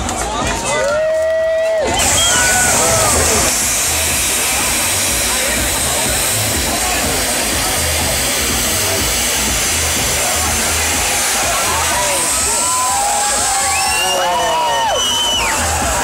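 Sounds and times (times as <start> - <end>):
voices calling out: 1.6 - 16.0
fireworks hissing sparks: 1.8 - 16.0
music with low beat: 1.8 - 16.0.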